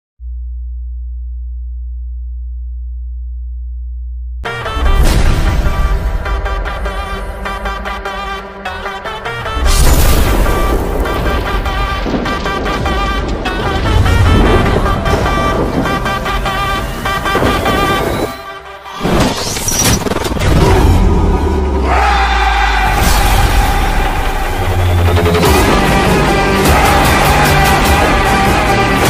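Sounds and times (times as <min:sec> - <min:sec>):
steady deep hum: 0:00.2 - 0:04.5.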